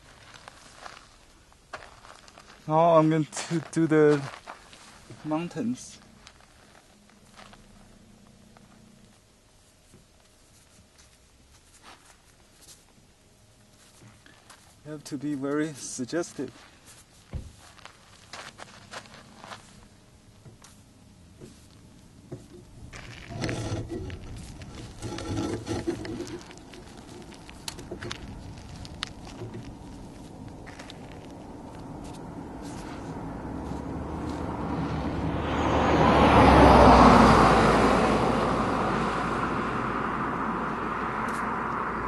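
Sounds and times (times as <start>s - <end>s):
scuffs and rustles on straw mat: 0.0s - 13.0s, 13.6s - 15.0s, 15.7s - 20.0s, 32.0s - 34.5s
faint rustling: 15.6s - 34.5s.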